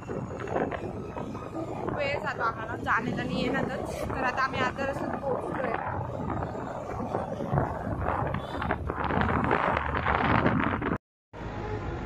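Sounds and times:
wind rushing over microphone: 0:00.0 - 0:11.0
motorbike engine and road noise: 0:00.0 - 0:12.0.

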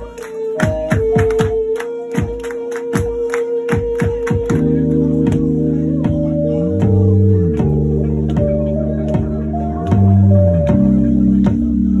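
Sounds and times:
live band playing loud: 0:00.0 - 0:12.0.

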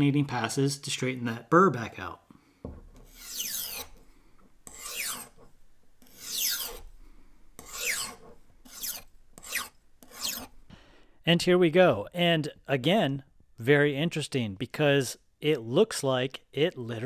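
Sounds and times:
knife scraping on honing rod: 0:03.0 - 0:04.0, 0:04.6 - 0:07.0, 0:07.6 - 0:10.6.

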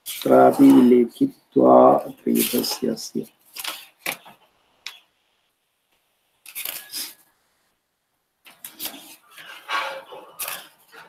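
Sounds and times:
man speaking: 0:00.2 - 0:03.3.

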